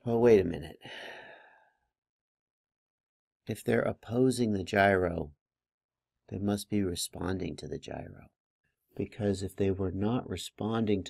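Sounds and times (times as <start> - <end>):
man's breathy exhale: 0.8 - 1.8.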